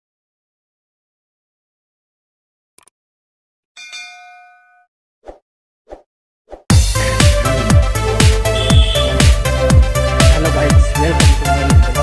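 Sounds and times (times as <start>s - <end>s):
notification bell ding: 3.8s - 4.9s.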